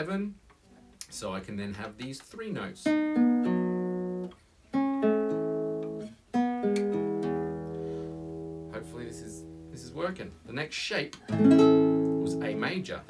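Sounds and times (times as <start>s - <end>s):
classical guitar chords: 2.7s - 10.1s, 11.2s - 13.0s.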